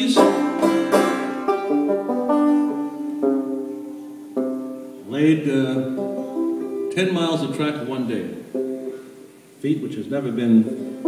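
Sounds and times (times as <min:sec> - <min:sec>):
banjo picking notes and chords: 0:00.0 - 0:09.4, 0:10.5 - 0:11.0.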